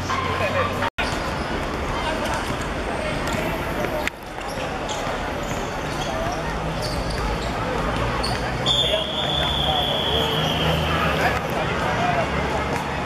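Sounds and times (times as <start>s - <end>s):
players' voices: 0.0s - 13.0s
referee's whistle blast: 8.6s - 10.8s.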